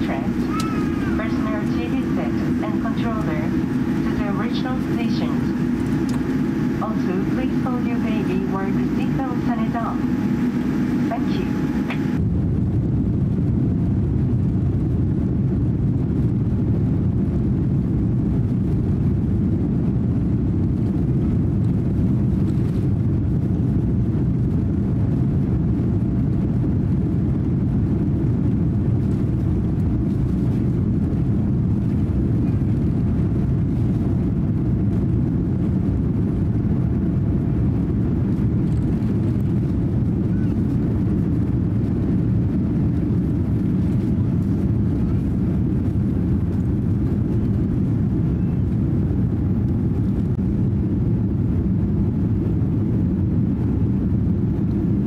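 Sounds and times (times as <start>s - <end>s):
jet engines roaring on takeoff: 0.0s - 55.0s
wheels rumbling on runway: 0.0s - 55.0s.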